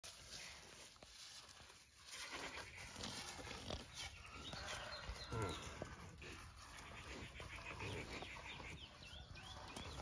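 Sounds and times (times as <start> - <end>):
soft low animal sounds: 0.0 - 10.0
small birds chirping: 0.2 - 10.0.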